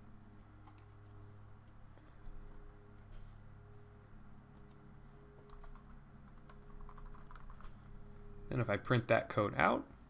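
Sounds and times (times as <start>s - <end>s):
steady low hum: 0.0s - 10.0s
keyboard typing clicks: 0.6s - 1.2s, 4.6s - 4.8s, 5.4s - 7.7s.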